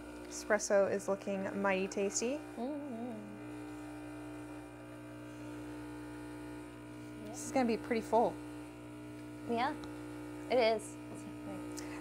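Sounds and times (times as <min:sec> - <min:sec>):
espresso machine pump buzzing: 0:00.0 - 0:12.0.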